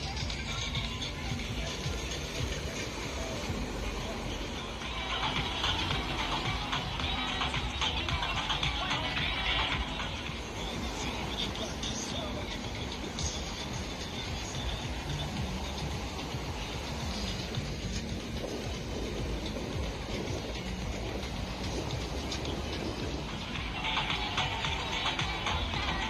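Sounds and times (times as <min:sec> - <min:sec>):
faint music: 0:00.0 - 0:26.0
steady rushing outdoor noise: 0:00.0 - 0:26.0
voices: 0:00.0 - 0:26.0.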